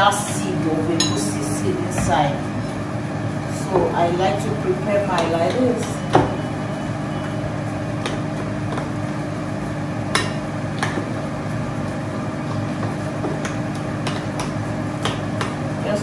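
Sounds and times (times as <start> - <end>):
kitchen hum: 0.0 - 16.0.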